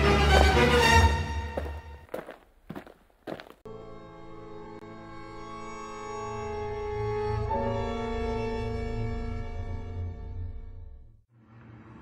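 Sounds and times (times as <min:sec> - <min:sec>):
footsteps: 0:00.0 - 0:03.6
music with sustained strings: 0:03.7 - 0:12.0.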